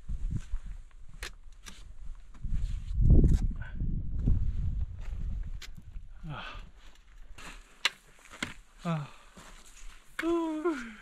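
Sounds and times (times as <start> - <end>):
wind rumble on microphone: 0.0 - 1.2, 1.8 - 6.2
person breathing hard: 6.1 - 6.9, 8.8 - 9.7
trekking pole clicking on rock: 7.8 - 8.6.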